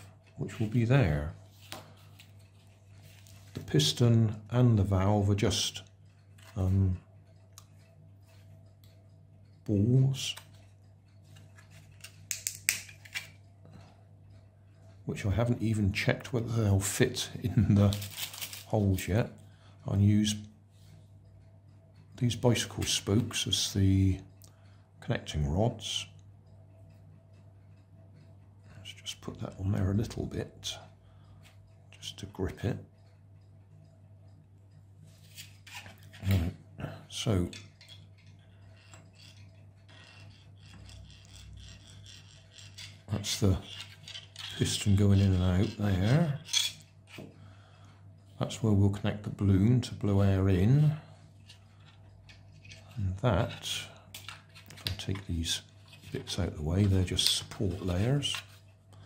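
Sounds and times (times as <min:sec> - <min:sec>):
steady low hum: 0:00.0 - 0:59.0
plastic parts clicking: 0:37.5 - 0:47.3, 0:54.1 - 0:55.3.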